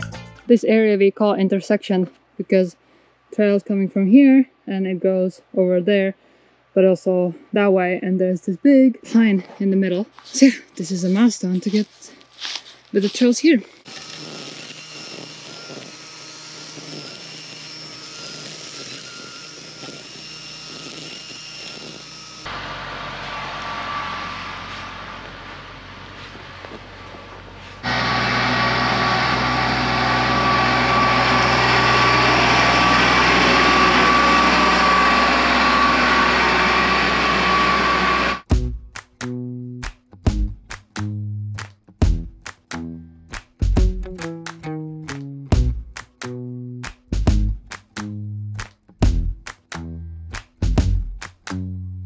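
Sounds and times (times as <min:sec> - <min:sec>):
string trimmer running: 0:11.1 - 0:38.5.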